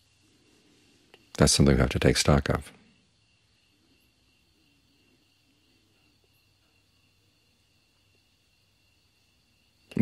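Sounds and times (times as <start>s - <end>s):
faint high-pitched hum: 0.0s - 10.0s
man speaking: 1.4s - 2.8s.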